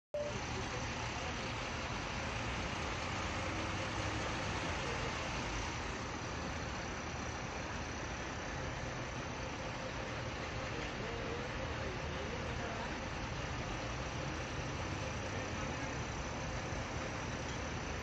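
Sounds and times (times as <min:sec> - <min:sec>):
lorry engines running: 0:00.2 - 0:18.0.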